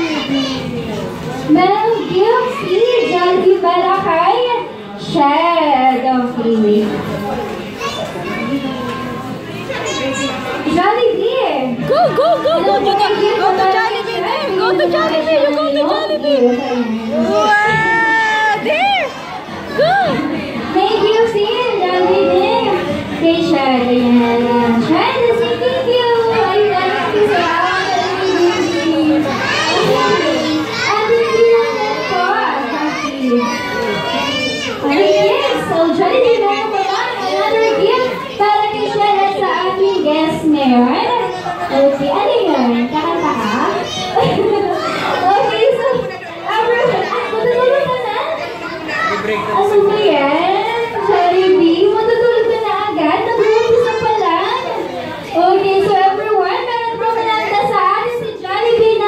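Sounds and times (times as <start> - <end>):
children chattering and calling: 0.0 - 59.0.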